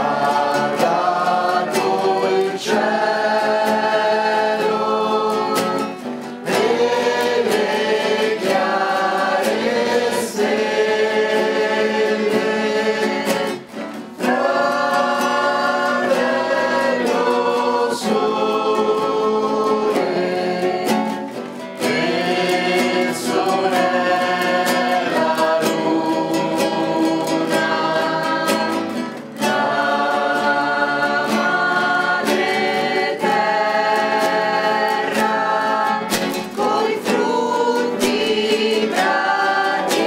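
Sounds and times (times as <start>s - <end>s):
acoustic guitar strumming: 0.0s - 40.0s
group singing: 0.0s - 40.0s.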